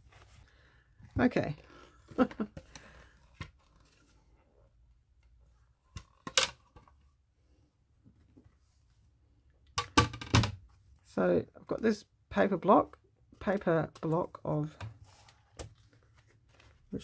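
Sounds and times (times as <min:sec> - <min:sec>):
paper rustling: 0:15.0 - 0:17.0.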